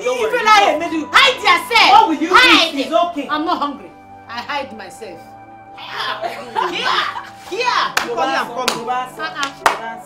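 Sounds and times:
background music: 0.0 - 10.0
women laughing: 6.0 - 7.5
sharp hand claps: 7.9 - 10.0.

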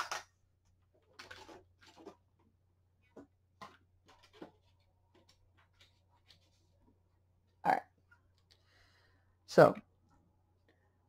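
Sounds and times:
paper sheets rustling: 4.0 - 6.8.

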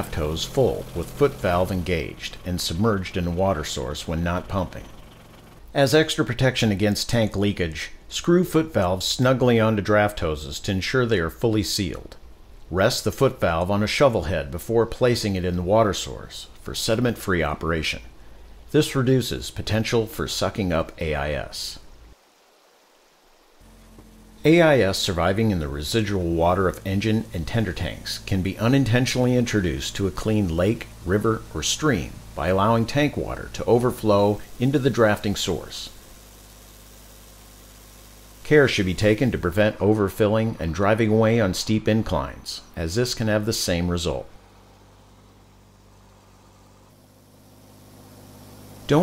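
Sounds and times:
fire engine motor humming: 0.0 - 5.8, 23.6 - 39.6
stream water running: 0.0 - 7.6, 12.2 - 49.0
low steady hum: 0.0 - 22.2, 22.8 - 49.0.

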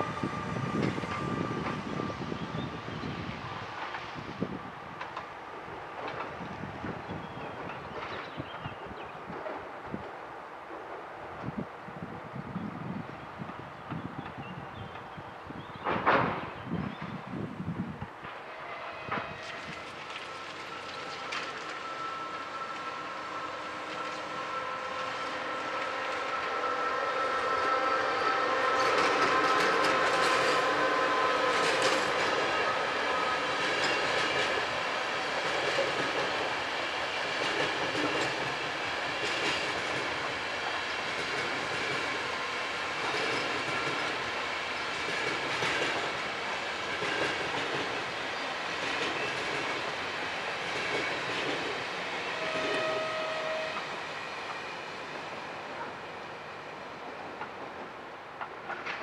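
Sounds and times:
locomotive whine: 0.0 - 8.2, 18.2 - 59.0
train wheels clattering over rail joints: 5.0 - 8.7, 37.2 - 54.7, 57.0 - 59.0.

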